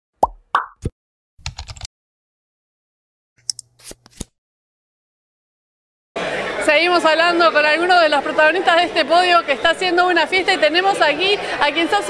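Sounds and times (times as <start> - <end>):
keyboard typing clicks: 1.4 - 1.9.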